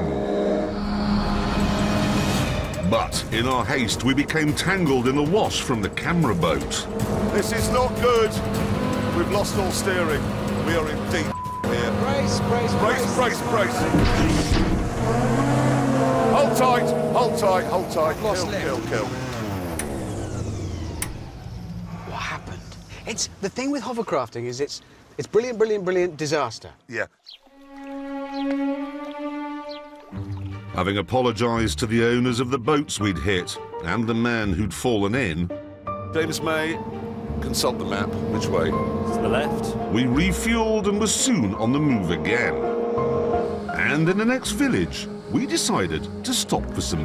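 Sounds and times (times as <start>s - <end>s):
engine and fan winding down: 0.0s - 23.1s, 36.4s - 46.6s
hovercraft engine and fan drone: 16.4s - 23.0s.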